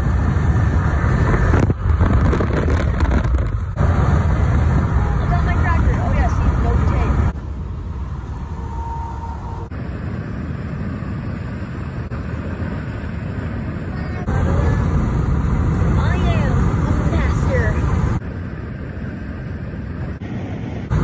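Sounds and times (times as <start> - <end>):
wind buffeting car window: 0.0 - 7.6
car road noise: 0.0 - 21.0.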